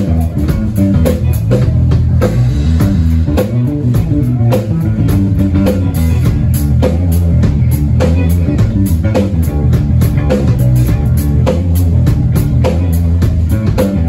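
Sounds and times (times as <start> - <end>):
drum kit: 0.0 - 14.0
electric guitars: 0.0 - 14.0
heavy bass notes: 0.0 - 14.0.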